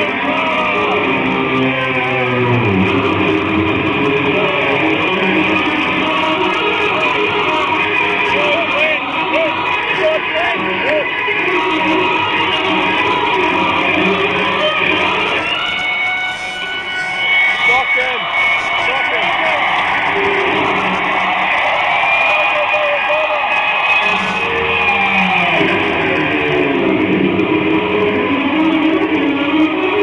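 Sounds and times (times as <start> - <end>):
electric guitar solo: 0.0 - 30.0.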